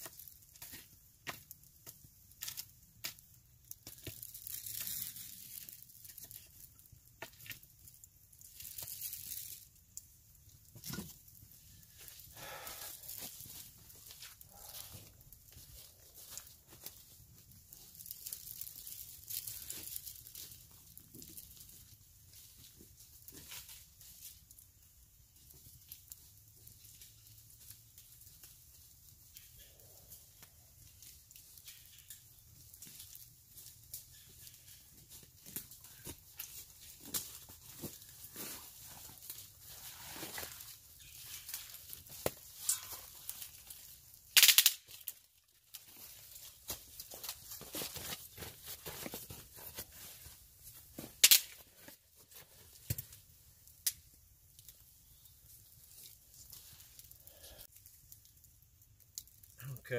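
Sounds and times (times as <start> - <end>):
footsteps crunching dry leaves: 11.8 - 21.7, 33.0 - 52.8.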